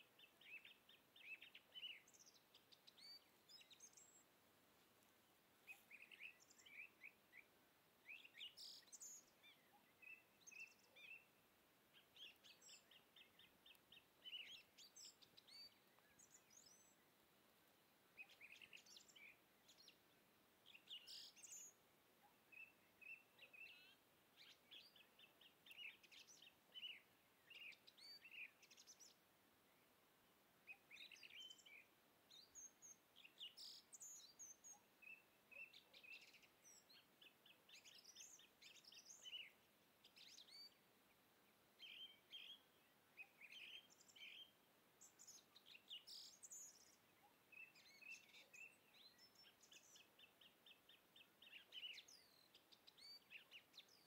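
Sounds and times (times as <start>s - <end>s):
low steady hiss: 0.0s - 54.0s
small birds chirping: 0.0s - 54.0s.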